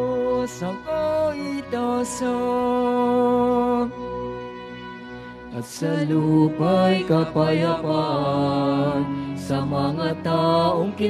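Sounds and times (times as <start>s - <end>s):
person singing chant with vibrato: 5.6s - 11.0s.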